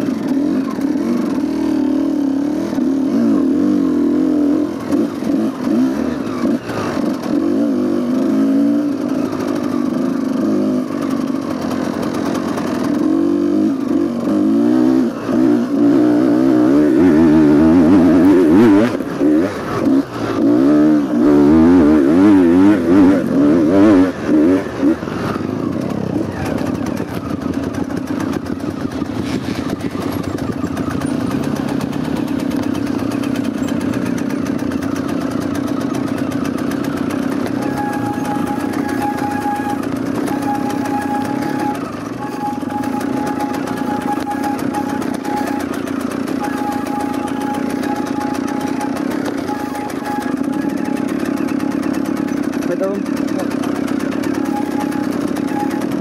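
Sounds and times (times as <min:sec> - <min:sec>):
dirt bike engine revving: 0:00.0 - 0:56.0
thin high tone: 0:37.4 - 0:51.6, 0:54.1 - 0:56.0.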